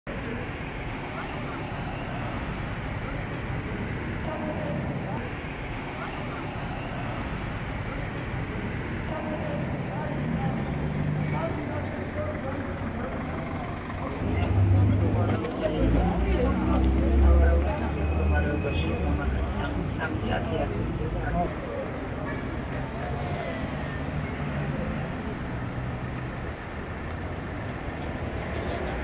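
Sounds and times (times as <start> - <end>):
steady traffic: 0.0 - 29.0
crowd voices: 0.1 - 29.0.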